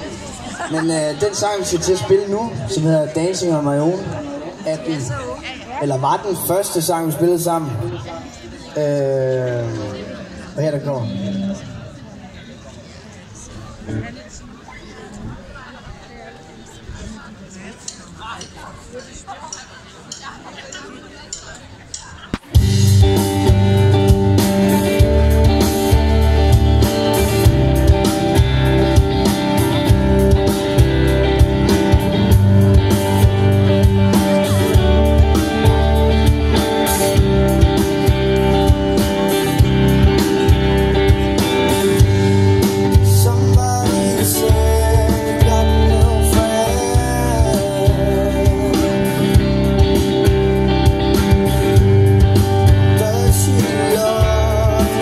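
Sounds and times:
rock band playing: 0:00.0 - 0:08.1, 0:08.7 - 0:12.0, 0:22.4 - 0:55.0
electric guitars: 0:00.0 - 0:12.5, 0:22.3 - 0:55.0
drum kit beat: 0:21.4 - 0:55.0
sung vocals: 0:22.6 - 0:55.0.

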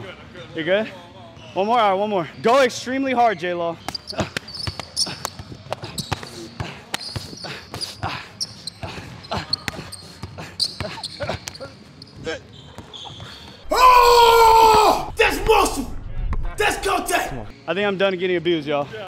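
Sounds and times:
person shouting: 0:13.7 - 0:15.9.

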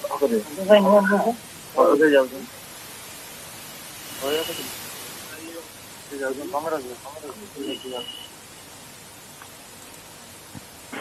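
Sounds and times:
steady background hiss: 0:00.0 - 0:11.0
man's voice: 0:01.8 - 0:02.5, 0:04.2 - 0:04.7, 0:05.3 - 0:08.1.

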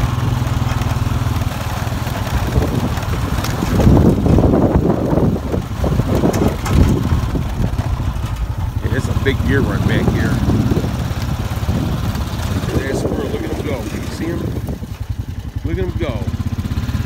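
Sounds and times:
quad bike engine running: 0:00.0 - 0:17.0.

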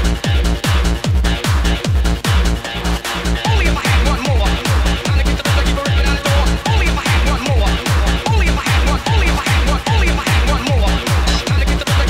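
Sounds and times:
hard trance music: 0:00.0 - 0:12.0.

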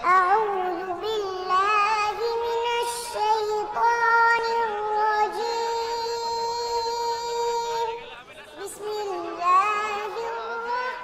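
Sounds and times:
child singing: 0:00.0 - 0:11.0.

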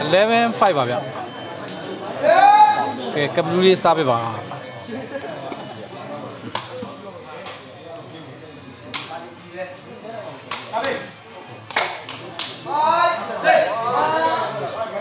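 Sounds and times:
voices shouting: 0:02.0 - 0:03.2, 0:12.6 - 0:15.0.

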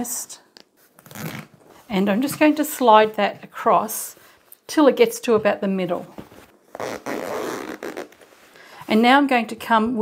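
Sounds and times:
zip rasping: 0:01.0 - 0:01.6, 0:06.7 - 0:08.5.

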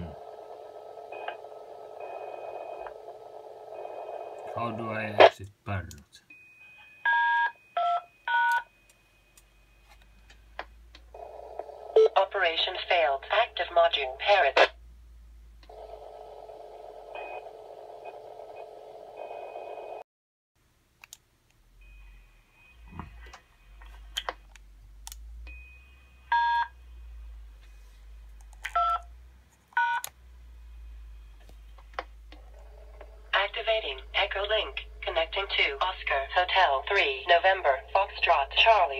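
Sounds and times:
faint steady hum: 0:00.0 - 0:20.0, 0:20.6 - 0:38.9
radio voice answering: 0:04.5 - 0:05.4, 0:12.1 - 0:14.7, 0:33.4 - 0:38.9.

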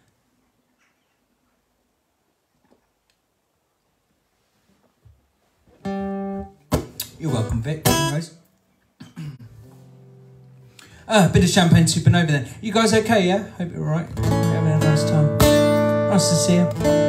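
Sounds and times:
acoustic guitar strum: 0:05.8 - 0:08.2, 0:14.2 - 0:17.0
man singing: 0:14.3 - 0:17.0.

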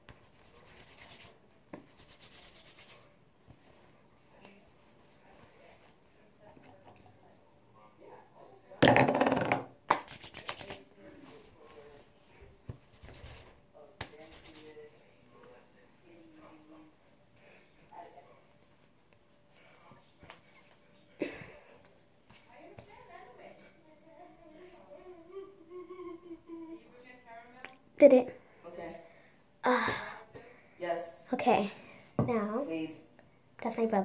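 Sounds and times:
girl humming softly: 0:24.9 - 0:26.9.

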